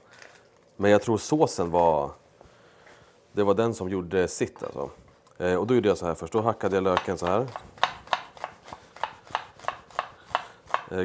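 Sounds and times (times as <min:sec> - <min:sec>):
knife chopping onion on board: 0:06.4 - 0:11.0.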